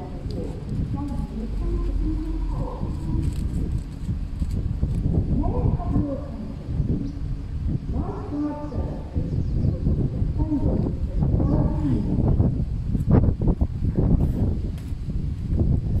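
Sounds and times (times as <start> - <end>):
person speaking: 0.0 - 3.7, 5.3 - 6.8
steady low rumble: 0.0 - 16.0.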